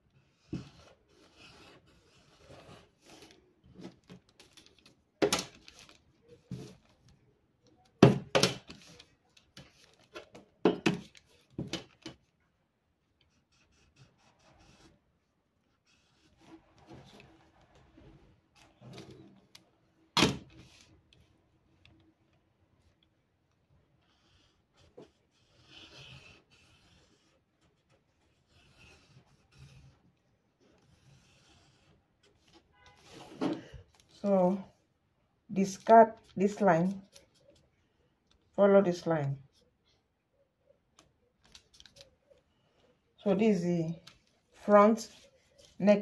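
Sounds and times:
marker rubbing on paper: 0:13.4 - 0:14.9, 0:24.0 - 0:30.0, 0:30.8 - 0:33.3
paper rustling: 0:41.4 - 0:42.1.

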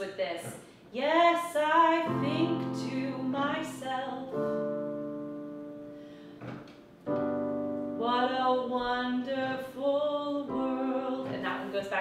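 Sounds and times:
electronic keyboard piano chords: 0:02.0 - 0:12.0.

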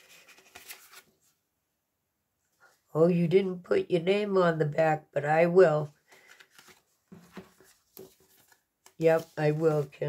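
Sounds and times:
paper card rustling: 0:00.0 - 0:01.3, 0:06.1 - 0:10.0.

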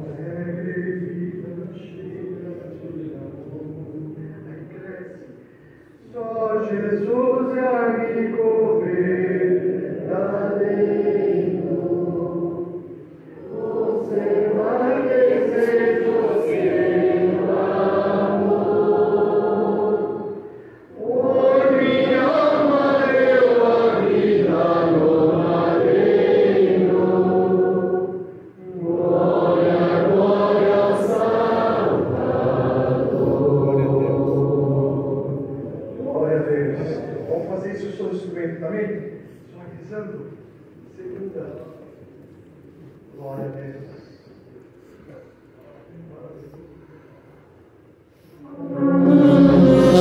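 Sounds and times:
congregation singing a hymn: 0:00.0 - 0:05.2, 0:06.0 - 0:38.4, 0:48.2 - 0:50.0.

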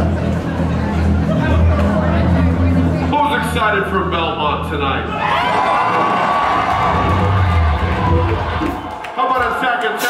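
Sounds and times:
electric guitar and bass chord: 0:00.0 - 0:05.2, 0:06.4 - 0:08.8
low bass note: 0:00.0 - 0:05.2, 0:06.0 - 0:08.9
crowd cheering and whooping: 0:05.0 - 0:09.6.

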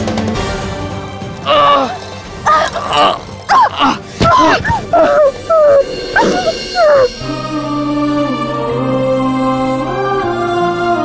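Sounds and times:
woman wailing and sobbing: 0:01.5 - 0:07.3.

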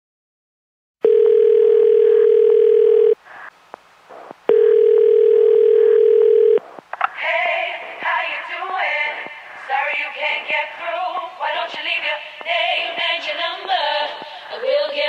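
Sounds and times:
telephone ringing tone: 0:01.0 - 0:03.2, 0:04.5 - 0:06.6
music with singing: 0:07.1 - 0:15.0.

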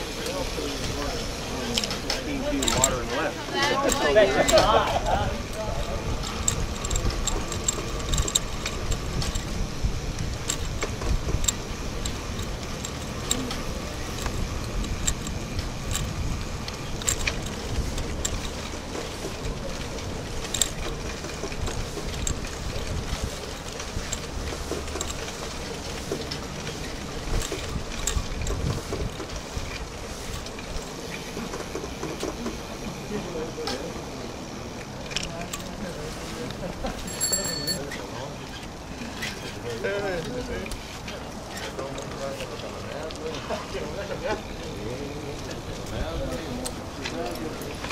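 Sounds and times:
bicycle riding on paved path: 0:00.0 - 0:47.9
small rattles and clicks: 0:00.2 - 0:32.8, 0:34.8 - 0:47.9.

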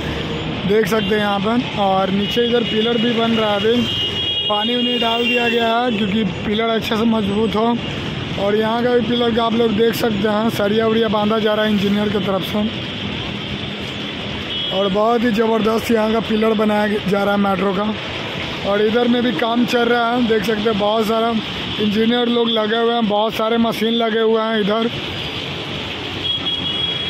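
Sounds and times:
steady road traffic: 0:00.0 - 0:27.0.

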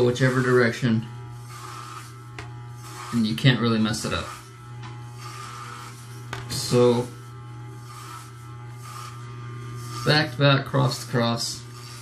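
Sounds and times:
blades rasping through hair: 0:00.0 - 0:12.0
electric hair clipper buzzing: 0:00.0 - 0:12.0.

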